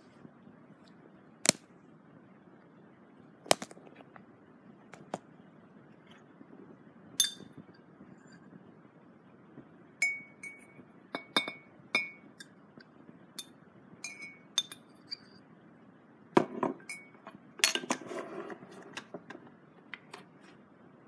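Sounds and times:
bowl clinking: 7.2s - 7.6s, 10.0s - 12.5s, 13.4s - 15.3s, 16.4s - 18.0s.

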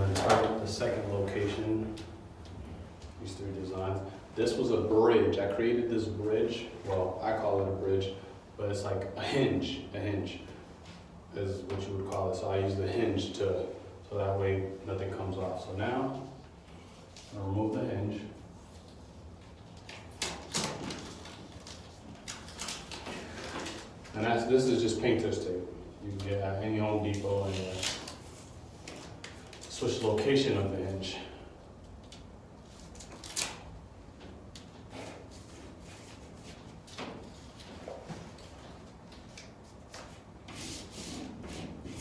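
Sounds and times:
tape and paper crinkling: 19.6s - 24.2s, 27.1s - 30.3s, 32.0s - 33.8s
tape ripping off glass: 32.9s - 33.7s.

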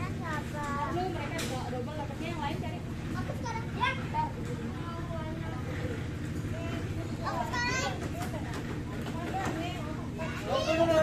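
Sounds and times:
children chattering: 0.0s - 11.0s
low background hum: 0.0s - 11.0s.

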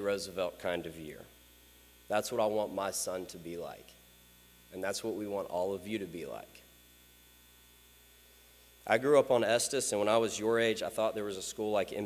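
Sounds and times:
faint electrical mains hum: 0.0s - 12.0s
man's voice: 4.8s - 6.6s, 8.9s - 12.0s.

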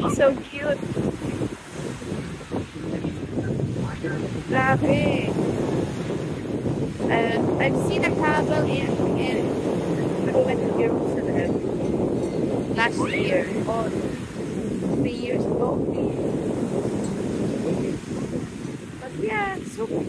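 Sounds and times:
wind blowing across microphone: 0.0s - 20.0s
indistinct voices calling out: 12.8s - 13.8s.

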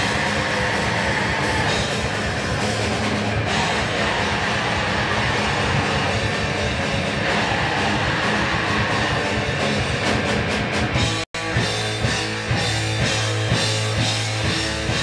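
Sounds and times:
drum kit: 0.0s - 15.0s
electric guitar: 0.0s - 15.0s
punk rock band playing live: 0.0s - 15.0s.

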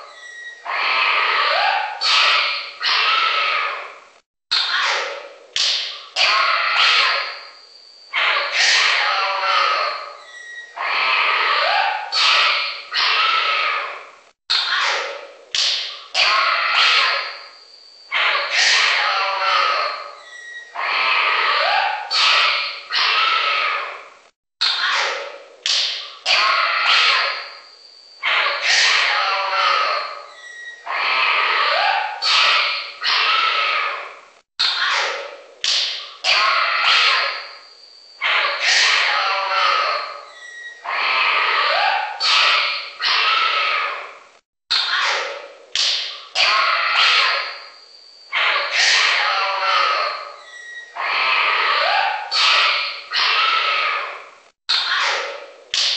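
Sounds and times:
animal calls and squawks: 0.0s - 55.9s.

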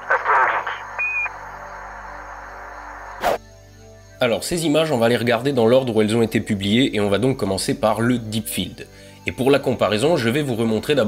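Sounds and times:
radio static crackling: 0.0s - 3.4s.

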